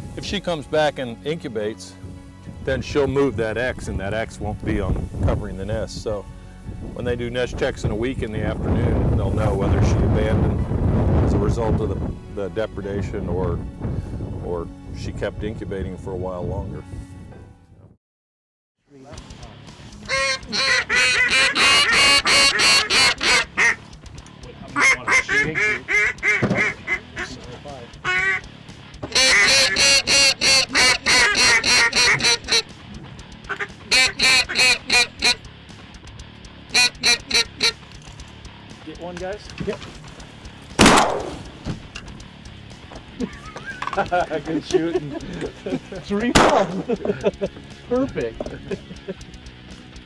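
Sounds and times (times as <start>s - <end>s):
goose honking: 20.1s - 23.9s, 24.7s - 27.4s, 28.0s - 32.8s, 33.4s - 35.4s, 36.7s - 37.8s
loud bang: 40.8s - 41.8s, 46.3s - 46.9s.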